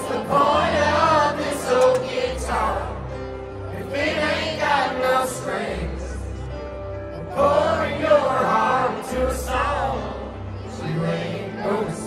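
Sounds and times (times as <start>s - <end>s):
crowd singing along: 0.0s - 12.0s
live country band: 0.0s - 12.0s.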